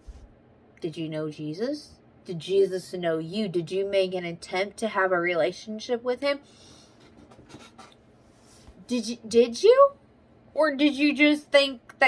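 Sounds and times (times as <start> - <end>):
woman speaking: 0.8 - 6.4, 8.8 - 10.0, 10.6 - 12.0.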